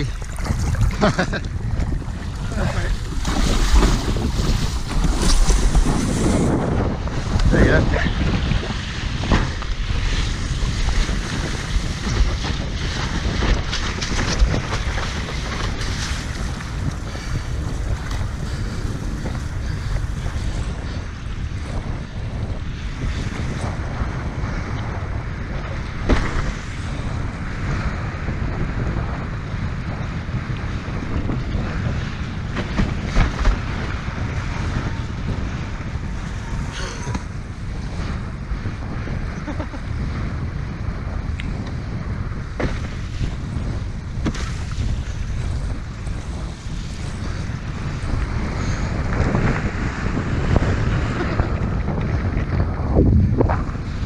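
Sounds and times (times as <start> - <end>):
choppy sea water rushing: 0.0 - 54.0
wind buffeting microphone: 0.0 - 54.0.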